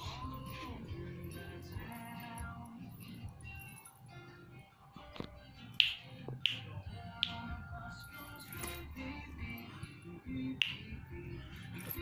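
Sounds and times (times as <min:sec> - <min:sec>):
song playing in the room: 0:00.0 - 0:12.0
finger snaps: 0:05.2 - 0:07.6, 0:10.6 - 0:11.0.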